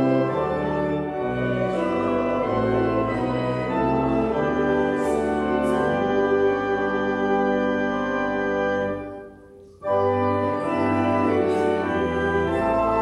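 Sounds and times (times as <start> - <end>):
church organ playing chords: 0.0 - 13.0.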